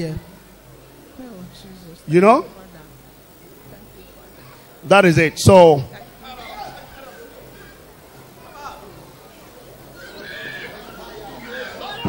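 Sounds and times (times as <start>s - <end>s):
crowd noise: 0.0s - 12.0s
high-pitched voices crying out: 9.9s - 12.0s.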